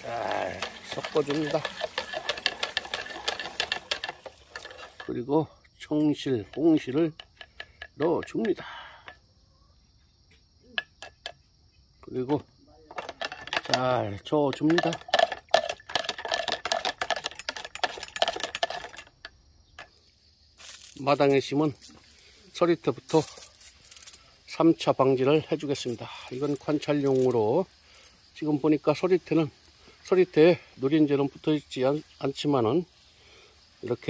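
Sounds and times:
metal rod clicking in plastic bucket: 0.2 - 5.1, 12.9 - 19.9.

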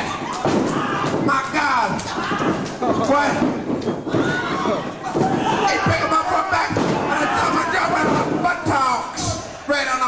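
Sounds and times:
voices shouting: 4.0 - 9.6.

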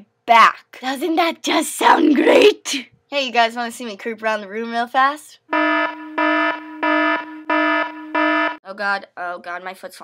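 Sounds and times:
electronic alarm beeps: 5.5 - 8.6.

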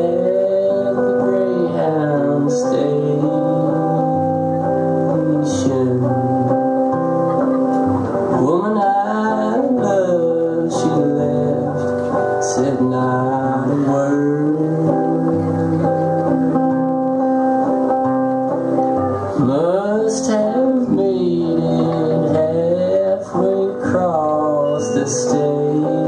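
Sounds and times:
man singing blues: 0.0 - 18.6, 19.2 - 26.0
strummed acoustic guitar: 0.0 - 26.0.

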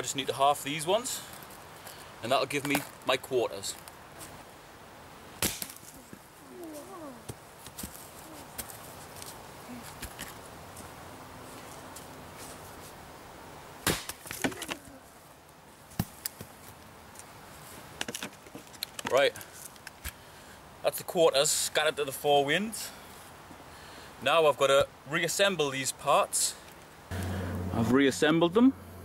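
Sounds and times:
axe chopping log: 5.4 - 5.8, 13.8 - 14.8.

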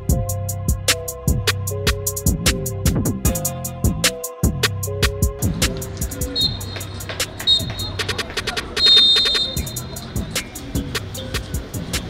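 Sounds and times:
background music with steady beat: 0.0 - 12.0
referee's whistle blast: 6.2 - 9.9.

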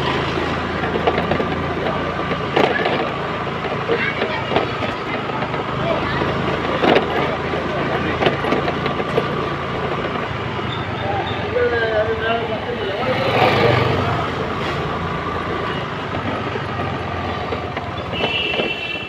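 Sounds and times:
vehicle passing close: 0.0 - 18.1
traffic engines running: 0.0 - 19.0
voices: 0.5 - 19.0.

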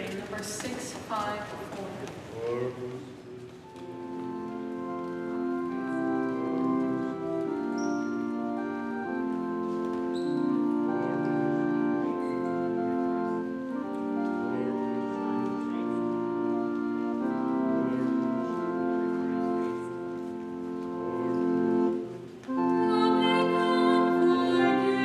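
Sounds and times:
church organ playing a hymn: 3.3 - 25.0.

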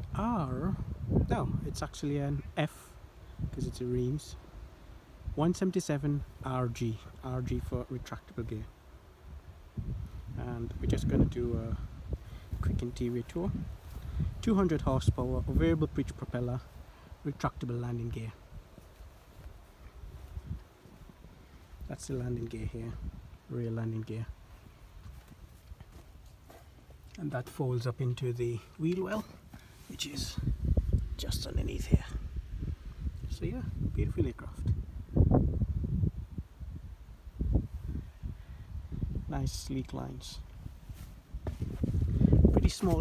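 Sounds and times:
wind rumble on microphone: 0.0 - 26.3, 29.9 - 43.0.

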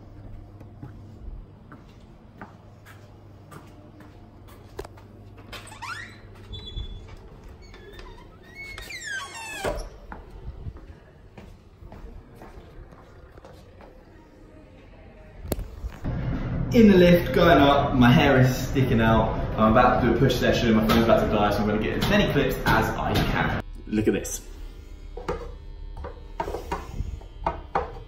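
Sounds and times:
low hum: 0.0 - 21.9
door squeaking open: 5.5 - 10.1.

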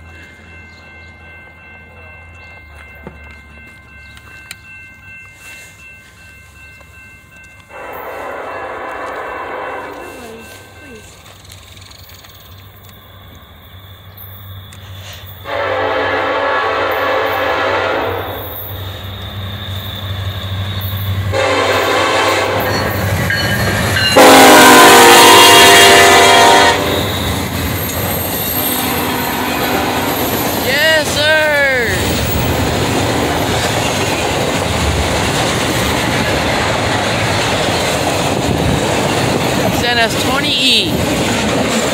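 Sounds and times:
train rumbling and clattering: 0.0 - 41.9
locomotive horn blasts: 7.7 - 10.4, 15.4 - 18.4, 21.3 - 22.9, 24.1 - 27.3, 28.9 - 30.3
wavering squeal: 18.3 - 21.3, 26.8 - 30.7.

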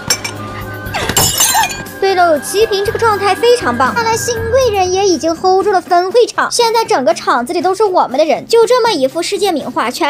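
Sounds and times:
glass or crockery breaking: 0.0 - 2.0
background music: 0.0 - 10.0.

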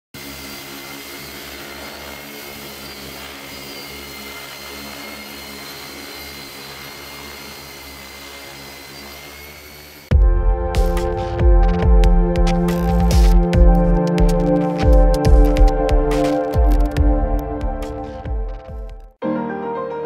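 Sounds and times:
drone propellers humming: 0.2 - 19.2.

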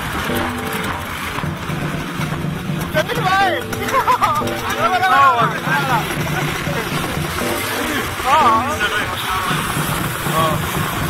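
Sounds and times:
motorcycle and car engines: 0.0 - 11.0
street noise: 0.0 - 11.0.

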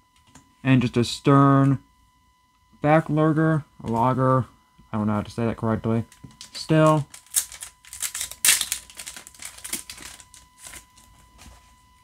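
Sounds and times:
foil pack crinkling: 6.2 - 11.6.

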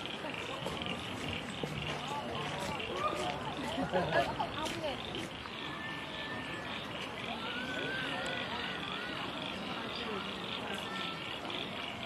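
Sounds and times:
distant chatter of voices: 0.0 - 12.0
steady outdoor hiss: 0.0 - 12.0.

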